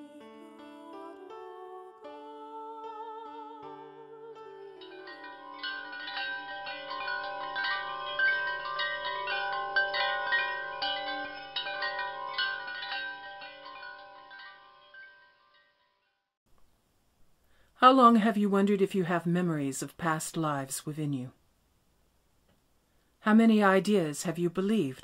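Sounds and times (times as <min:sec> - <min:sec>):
wind chimes ringing: 0:04.6 - 0:16.2.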